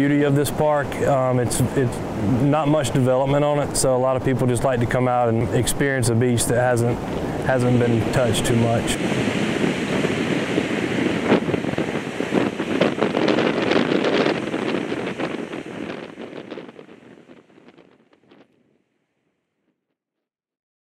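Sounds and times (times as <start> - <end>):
ocean surf breaking: 0.0 - 18.0
wind buffeting microphone: 0.0 - 18.5.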